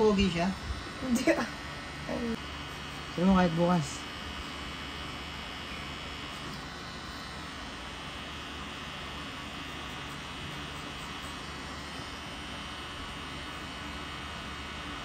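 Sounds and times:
tattoo machine humming: 0.0 - 15.0.

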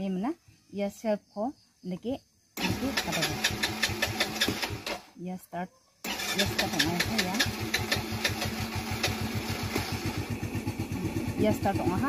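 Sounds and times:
scooter engine idling: 2.6 - 5.1, 6.1 - 12.0.

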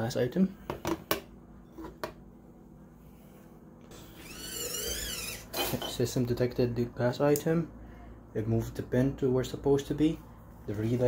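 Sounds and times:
servo motor whining: 4.0 - 5.5.

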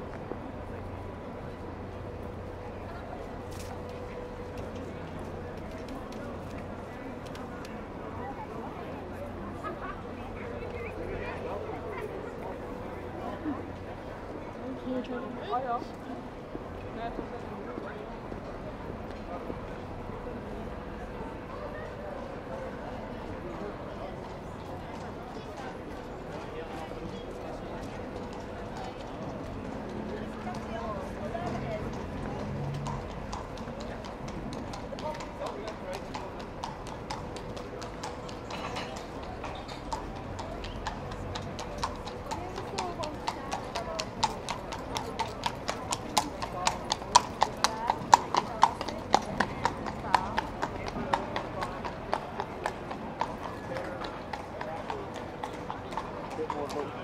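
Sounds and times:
people chattering: 0.0 - 57.0
horse hooves on cobblestones: 0.1 - 57.0.

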